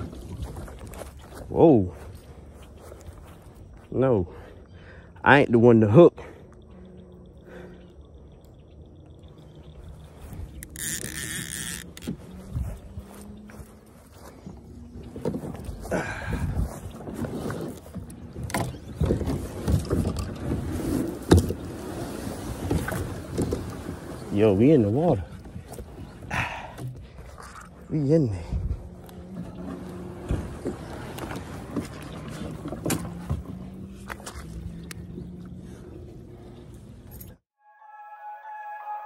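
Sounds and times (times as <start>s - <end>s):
knocks and scraping on boat hull: 17.0s - 24.3s, 29.3s - 34.5s.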